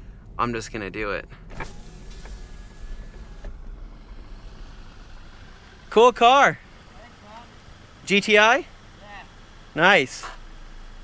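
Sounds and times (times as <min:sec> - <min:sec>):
low car cabin rumble: 0:00.0 - 0:11.0
power window motor whining: 0:01.4 - 0:08.1
window motor click: 0:01.5 - 0:04.4.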